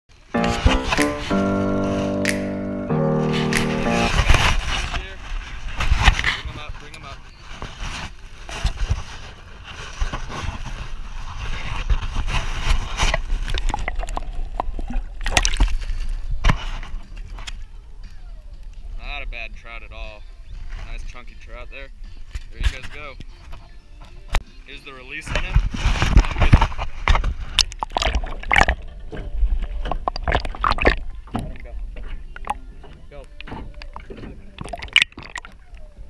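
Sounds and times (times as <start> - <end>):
musical intro of held notes: 0.1 - 4.7
water splashing: 13.2 - 16.1, 27.5 - 36.0.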